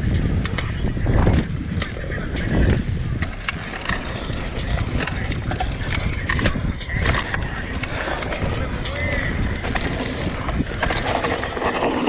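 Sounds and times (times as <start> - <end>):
bike knocks and rattles: 0.0 - 12.0
bike rolling rumble: 0.0 - 12.0
wind: 0.0 - 12.0.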